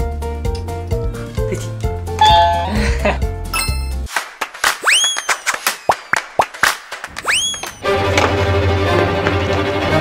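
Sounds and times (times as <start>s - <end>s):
background music: 0.0s - 4.4s, 7.8s - 10.0s
two-note ding-dong chime: 2.2s - 2.9s.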